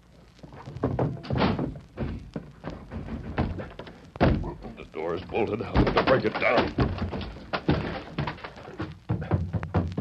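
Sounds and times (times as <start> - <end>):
thuds and knocks on wooden door: 0.8 - 4.6, 5.7 - 10.0.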